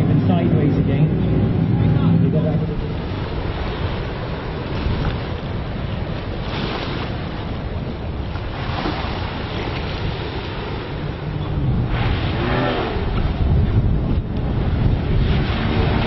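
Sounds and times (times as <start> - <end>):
outboard engine running: 0.0 - 16.0
waves: 0.0 - 16.0
wind on microphone: 0.0 - 16.0.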